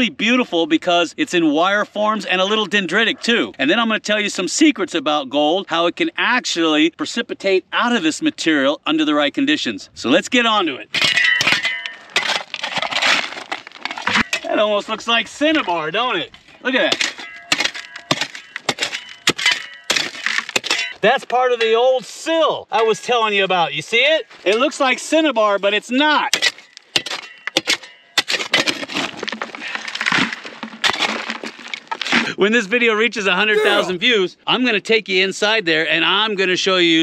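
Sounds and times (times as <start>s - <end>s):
scraping and crunching of stones: 12.2s - 14.4s
guitar phrase: 33.5s - 33.9s.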